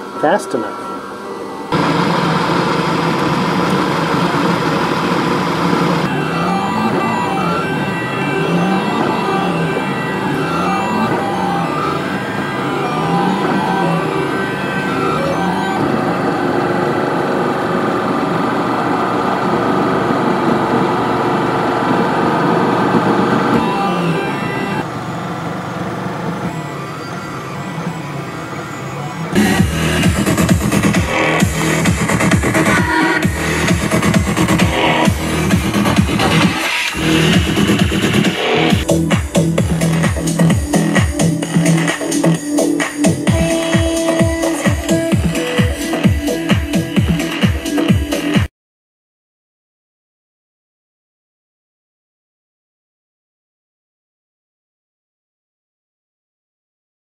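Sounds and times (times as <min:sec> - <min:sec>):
stepper motors whining: 0:00.0 - 0:48.4
loud electronic music: 0:04.0 - 0:16.3, 0:23.2 - 0:24.9, 0:26.5 - 0:48.5.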